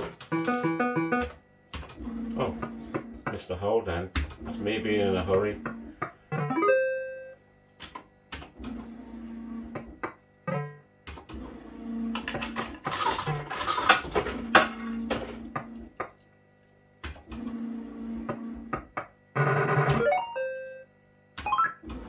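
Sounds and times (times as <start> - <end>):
electronic jingle: 6.4 - 7.4.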